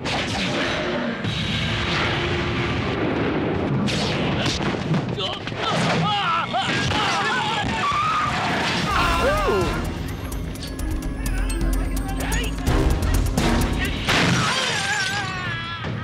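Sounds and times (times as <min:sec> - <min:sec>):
action film score: 0:00.0 - 0:16.0
men yelling: 0:08.9 - 0:10.0.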